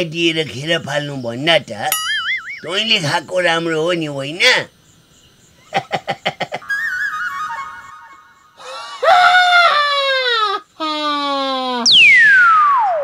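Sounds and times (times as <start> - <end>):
high wavering cry: 1.9 - 3.0, 6.6 - 13.0
warbling whistle-like tone: 2.0 - 2.8, 6.7 - 8.5, 11.9 - 13.0
whistle sliding downward: 6.7 - 8.6, 11.8 - 13.0.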